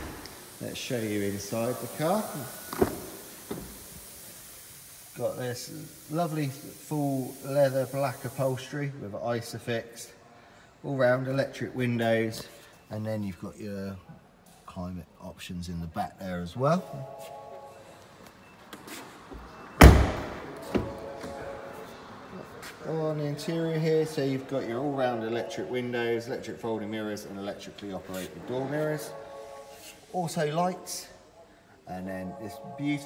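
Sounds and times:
faint room hiss: 0.0s - 33.0s
car door opening thump: 19.8s - 21.0s.

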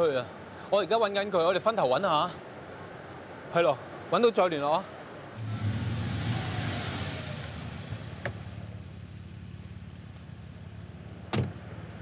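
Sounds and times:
road noise: 0.0s - 12.0s
car engine running: 5.4s - 12.0s.

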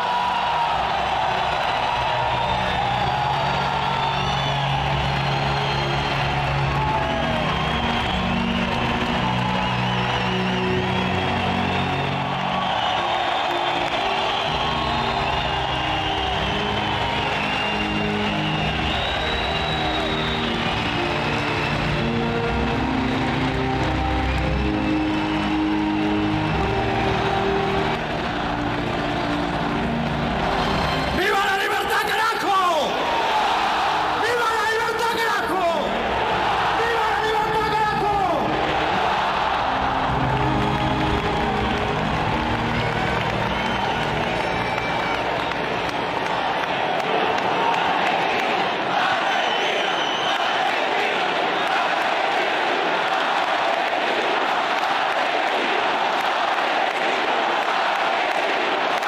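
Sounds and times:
music playing: 0.0s - 51.0s
crowd cheering and whooping: 0.0s - 59.0s.

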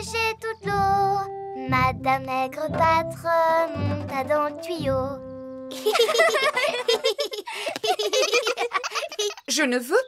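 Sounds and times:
cartoon children giggling: 5.7s - 9.5s.

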